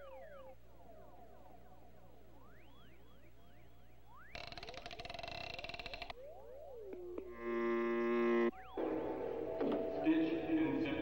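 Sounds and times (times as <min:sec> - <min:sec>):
swooping gliding tones: 0:00.0 - 0:10.1.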